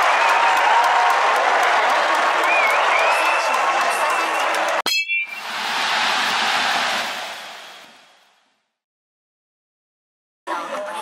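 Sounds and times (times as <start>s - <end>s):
stadium crowd cheering and applauding: 0.0s - 8.3s.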